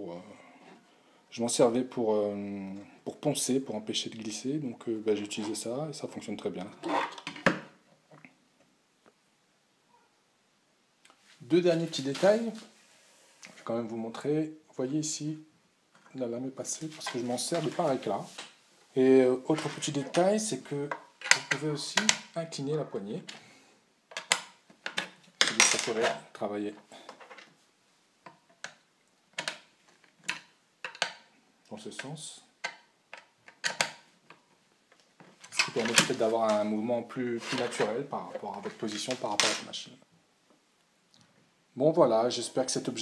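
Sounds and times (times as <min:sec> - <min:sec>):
plastic parts clicking: 0:24.1 - 0:25.6, 0:28.2 - 0:31.3, 0:32.0 - 0:36.2.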